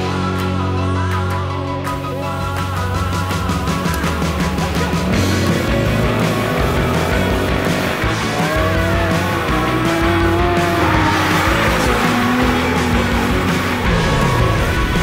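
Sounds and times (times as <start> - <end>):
loud rock music: 0.0 - 15.0
car engine running hard: 3.3 - 15.0
tyres squealing: 4.6 - 15.0.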